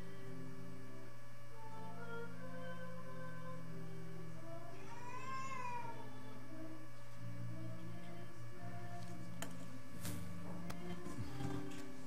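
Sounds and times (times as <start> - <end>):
meow-like cry: 4.7 - 6.1.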